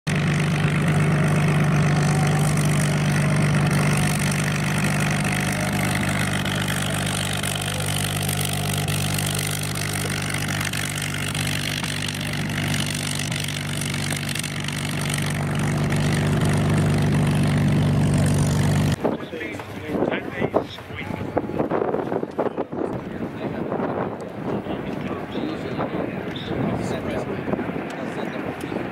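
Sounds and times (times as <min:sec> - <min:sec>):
aircraft engine droning: 0:00.1 - 0:20.2, 0:22.9 - 0:28.9
voices: 0:00.4 - 0:14.4, 0:19.0 - 0:28.9.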